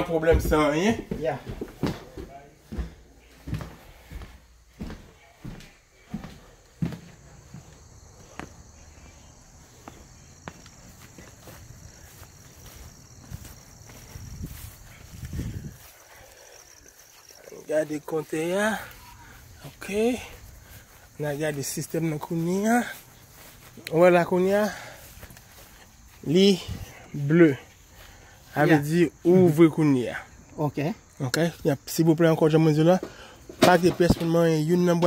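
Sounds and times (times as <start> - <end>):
footsteps on wooden floor: 0.0 - 28.2
footsteps on grass: 0.0 - 29.8.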